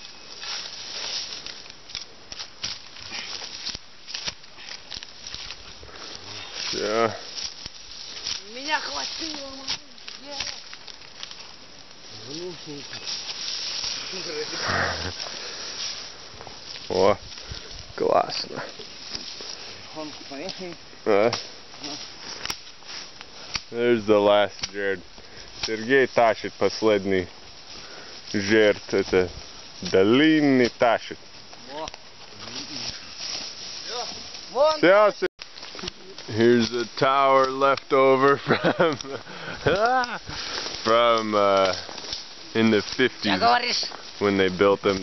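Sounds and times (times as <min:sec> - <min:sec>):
branches rustling and swishing: 0:00.0 - 0:45.0.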